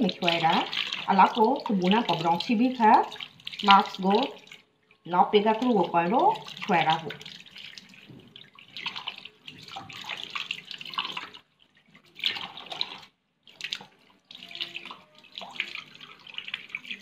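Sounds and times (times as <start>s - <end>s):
tap water splashing into sink: 0.0s - 4.6s, 5.4s - 17.0s.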